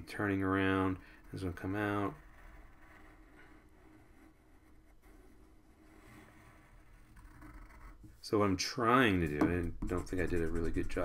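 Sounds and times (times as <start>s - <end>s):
pencil scratching on paper: 0.2s - 8.2s, 9.7s - 11.0s.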